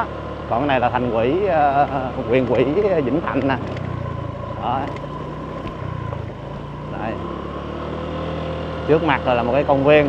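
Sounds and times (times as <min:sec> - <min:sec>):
motorbike engine running: 0:00.0 - 0:10.0
road noise: 0:00.0 - 0:10.0.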